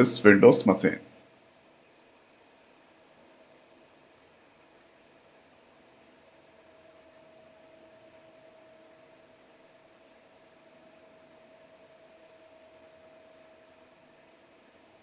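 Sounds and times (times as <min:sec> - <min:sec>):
faint steady hiss: 0:00.0 - 0:15.0
faint steady hum: 0:00.0 - 0:15.0.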